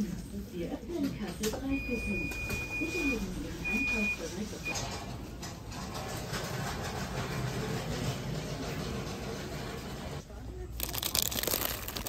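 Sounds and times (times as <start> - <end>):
supermarket background hum: 0.0 - 12.0.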